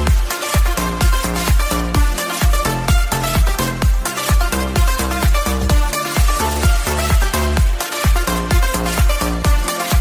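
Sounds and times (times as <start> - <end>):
kick drum: 0.0 - 10.0
pulsing synth bass: 0.0 - 10.0
synthesizer chords: 0.0 - 10.0.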